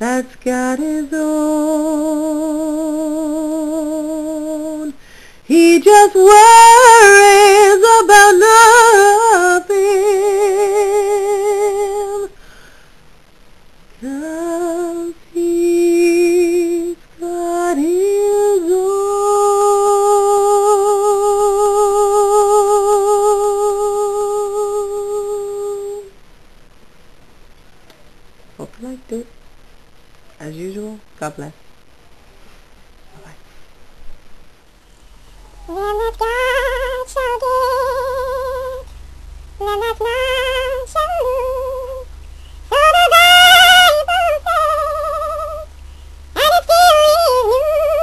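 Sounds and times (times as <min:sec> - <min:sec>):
woman singing long note: 0:00.0 - 0:12.4, 0:14.0 - 0:26.1, 0:35.5 - 0:38.9, 0:39.5 - 0:48.0
breath: 0:05.0 - 0:05.4, 0:12.4 - 0:13.1, 0:45.8 - 0:46.2.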